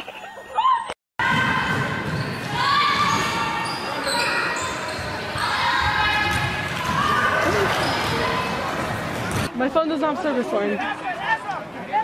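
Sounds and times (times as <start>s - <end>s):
voices of players and spectators: 1.2s - 12.0s
basketball bouncing on hardwood: 5.8s - 7.2s.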